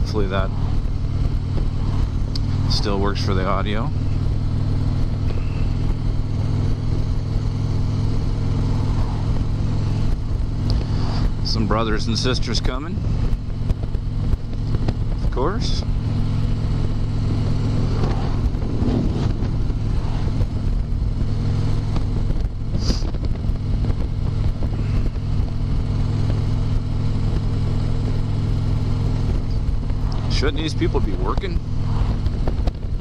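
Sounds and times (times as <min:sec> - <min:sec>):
motorcycle engine cruising: 0:00.0 - 0:33.0
road noise: 0:00.0 - 0:33.0
wind: 0:00.0 - 0:33.0.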